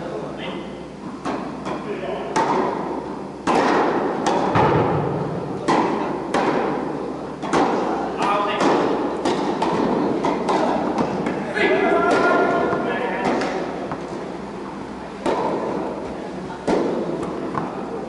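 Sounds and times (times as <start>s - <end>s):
tennis balls bouncing on court: 1.0s - 18.0s
tennis balls struck by rackets: 1.0s - 18.0s.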